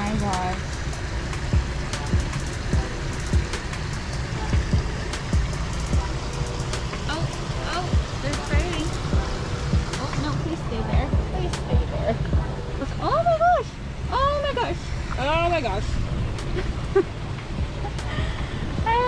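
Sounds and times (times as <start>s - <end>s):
busy street traffic rumble: 0.0s - 19.0s.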